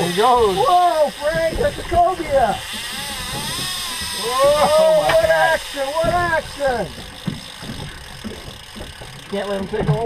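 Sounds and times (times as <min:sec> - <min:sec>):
outboard motor idling: 0:00.0 - 0:10.0
water noise: 0:00.0 - 0:10.0
wind: 0:00.0 - 0:10.0.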